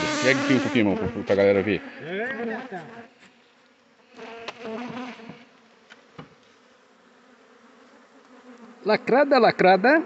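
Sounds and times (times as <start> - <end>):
honeybees buzzing: 0.0 - 10.0
knocks on wooden hive boxes: 4.4 - 5.4.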